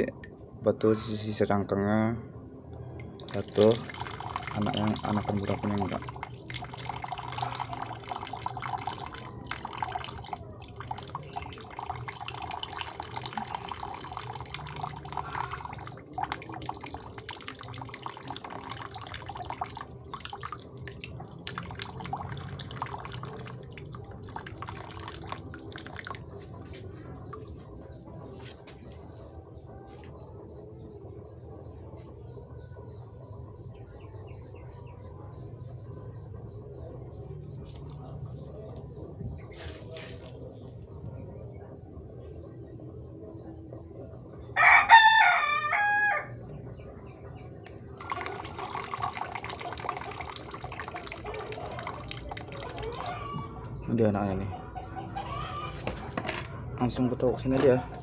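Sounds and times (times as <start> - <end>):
water pouring and splashing into tub: 3.1 - 27.6, 48.0 - 53.7.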